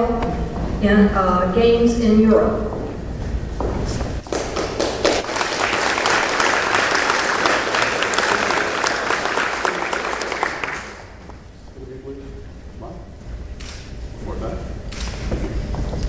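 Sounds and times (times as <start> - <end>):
audience applauding: 4.2 - 11.2.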